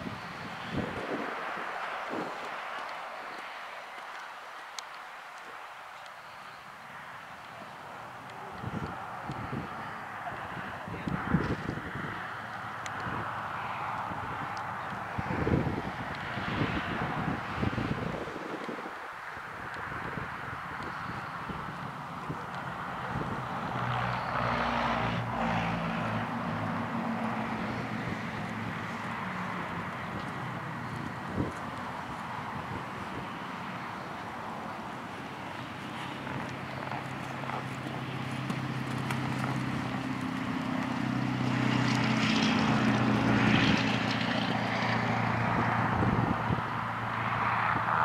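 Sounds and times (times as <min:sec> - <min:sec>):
engine drone with low hum: 0:20.6 - 0:48.0.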